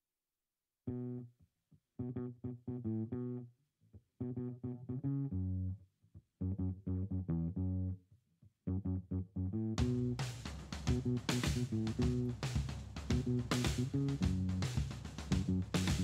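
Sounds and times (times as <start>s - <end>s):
guitar and bass music: 0.9s - 1.3s, 2.0s - 3.5s, 4.2s - 5.8s, 6.4s - 8.0s, 8.6s - 16.0s.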